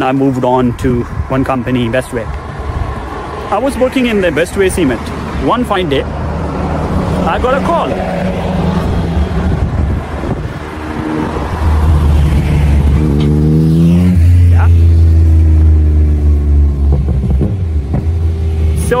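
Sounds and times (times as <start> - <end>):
vehicle engine pulling away: 6.2 - 19.0.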